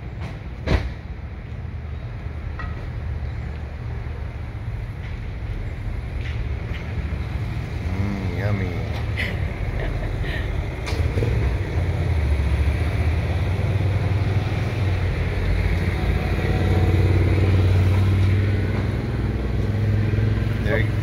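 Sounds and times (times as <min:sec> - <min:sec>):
low engine rumble: 0:00.0 - 0:21.0.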